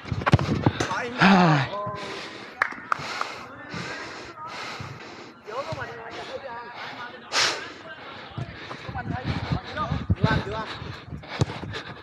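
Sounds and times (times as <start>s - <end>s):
players calling out: 0.3s - 12.0s.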